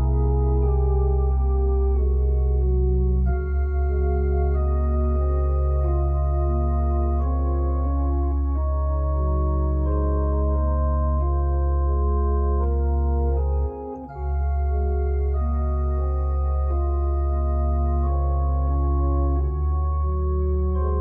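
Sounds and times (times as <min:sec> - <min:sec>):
organ playing sustained chords: 0:00.0 - 0:21.0.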